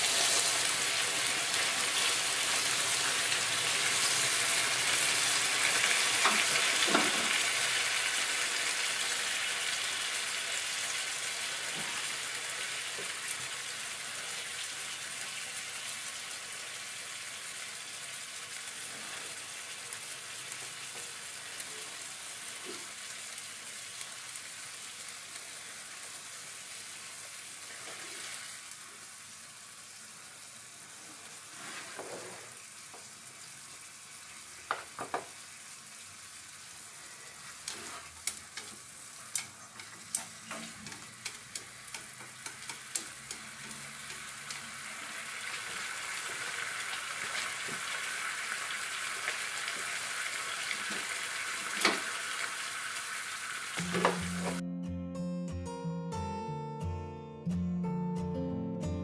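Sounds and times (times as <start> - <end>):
meat sizzling in a frying pan: 0.0 - 54.6.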